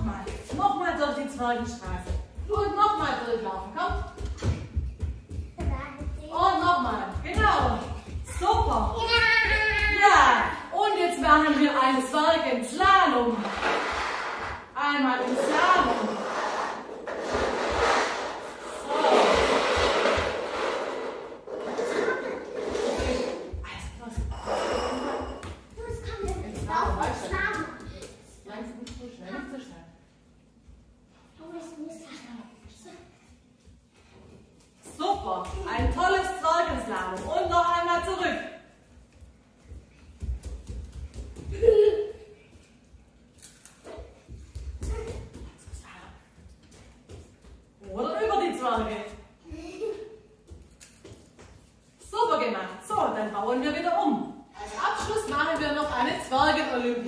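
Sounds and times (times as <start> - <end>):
bare feet on wooden floor: 0.0 - 10.6, 12.7 - 28.3
footsteps running on wooden floor: 0.0 - 10.6, 39.1 - 42.2, 44.1 - 49.2.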